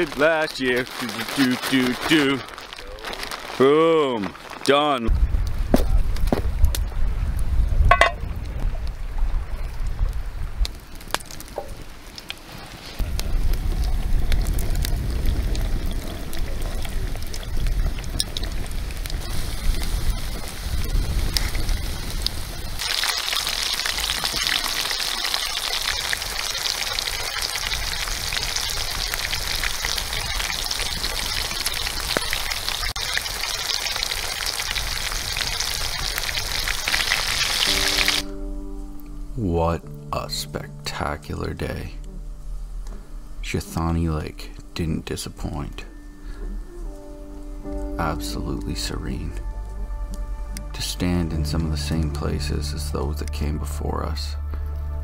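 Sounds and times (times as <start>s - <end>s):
fish frying in hot oil: 0.0s - 4.6s, 13.1s - 38.2s
campfire crackling: 0.0s - 55.0s
music: 37.7s - 55.0s.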